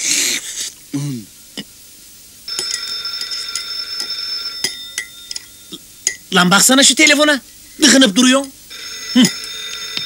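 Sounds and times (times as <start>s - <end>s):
telephone bell ringing: 2.5s - 5.7s, 8.7s - 10.0s.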